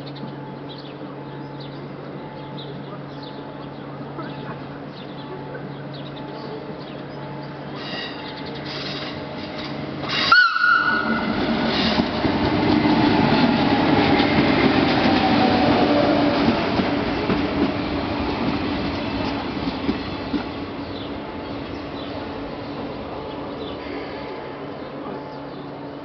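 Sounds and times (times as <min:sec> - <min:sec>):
train rumbling past: 0:00.0 - 0:26.0
train horn blast: 0:10.2 - 0:11.6.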